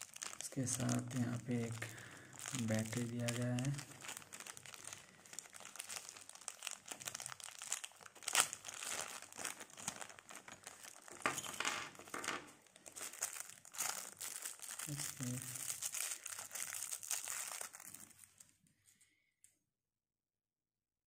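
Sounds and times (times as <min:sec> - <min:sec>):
plastic bag crinkling: 0:00.0 - 0:18.6.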